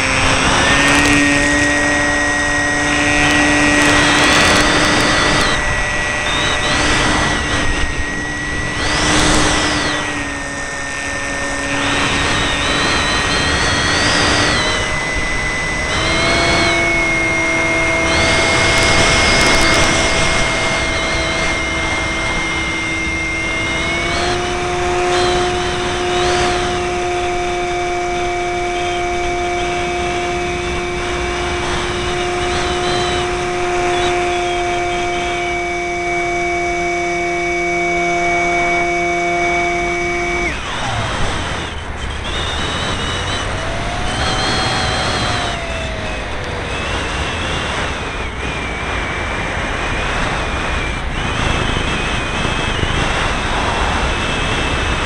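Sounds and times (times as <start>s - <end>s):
electric motor and propeller whining: 0.0s - 55.0s
wind noise rushes: 0.0s - 55.0s.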